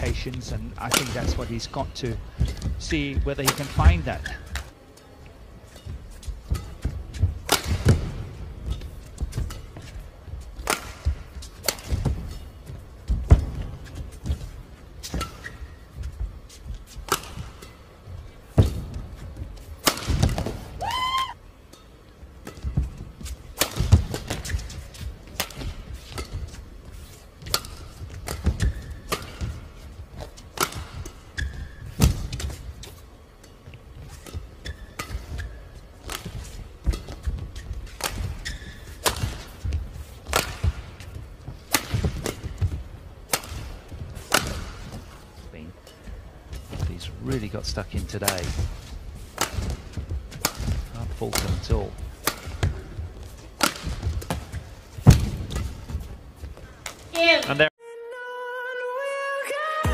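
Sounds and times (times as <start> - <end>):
shoe soles squeaking on court: 0.0 - 19.8, 22.4 - 57.4
racket striking shuttlecock: 0.8 - 1.7, 5.7 - 13.6, 17.0 - 17.8, 19.7 - 20.8, 23.5 - 26.5, 27.4 - 29.6, 30.5 - 45.1, 48.1 - 56.0.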